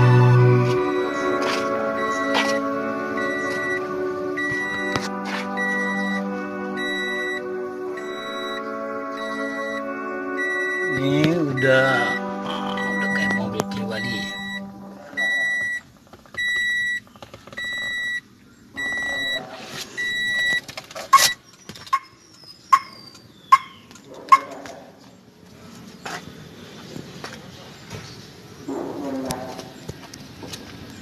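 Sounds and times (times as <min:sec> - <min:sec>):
car warning buzzer beeping: 0:00.0 - 0:22.1.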